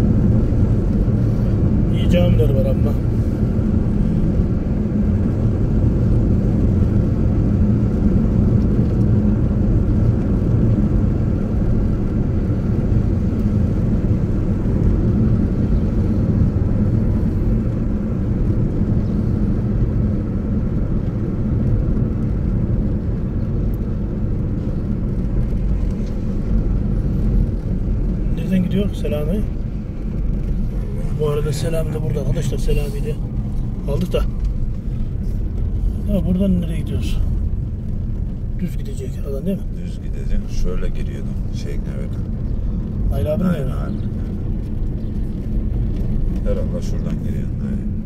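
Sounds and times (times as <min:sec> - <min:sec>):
car engine and tyre rumble: 0:00.0 - 0:48.0.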